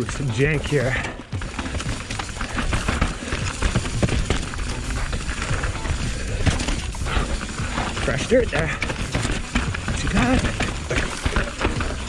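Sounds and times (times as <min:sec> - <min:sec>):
bike rattling: 0:00.0 - 0:12.0
bike tyres clattering over rocks: 0:00.0 - 0:12.0.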